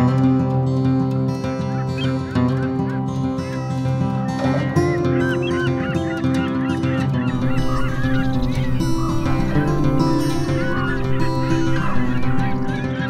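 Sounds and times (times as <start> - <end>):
background music with held notes: 0.0 - 13.0
flock of birds calling: 1.2 - 13.0.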